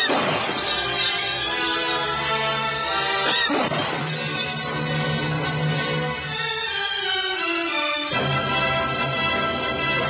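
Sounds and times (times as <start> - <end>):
shattering crash: 0.0 - 1.6
music: 0.0 - 10.0.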